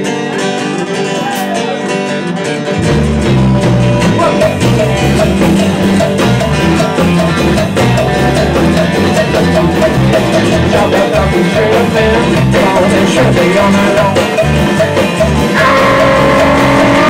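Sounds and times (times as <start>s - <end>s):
live rock band playing blues: 0.0s - 17.0s.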